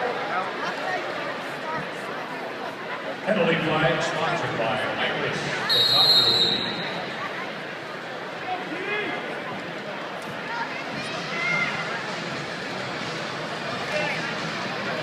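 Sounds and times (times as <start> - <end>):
crowd murmur: 0.0 - 15.0.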